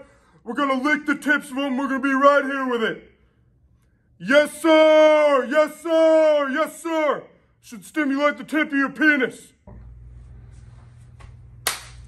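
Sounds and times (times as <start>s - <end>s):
low room hum: 0.0s - 12.0s
palms slapping together: 11.6s - 12.0s.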